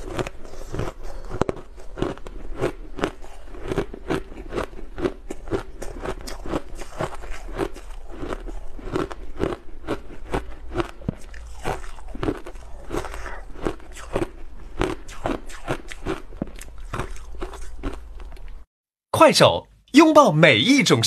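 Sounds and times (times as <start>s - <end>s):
crunching ice being chewed: 0.0s - 18.7s.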